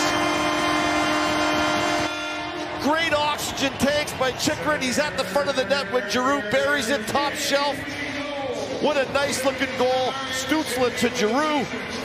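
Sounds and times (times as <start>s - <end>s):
arena goal horn: 0.0s - 3.9s
crowd cheering: 0.0s - 12.0s.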